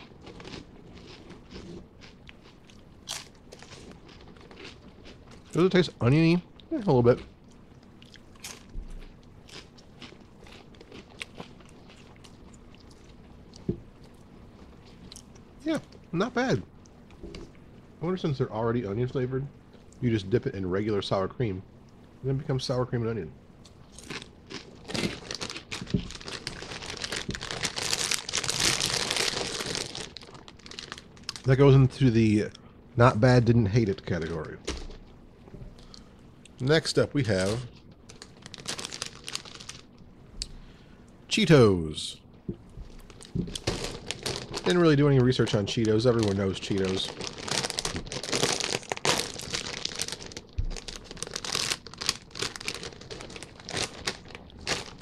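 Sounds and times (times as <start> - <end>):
plastic chip bag crinkling: 0.0 - 7.2, 23.9 - 32.0, 36.8 - 40.0, 42.9 - 55.0.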